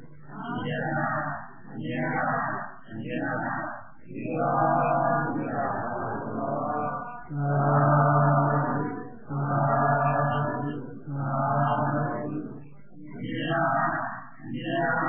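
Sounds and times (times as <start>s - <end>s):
person chanting in a low voice: 0.0s - 15.0s.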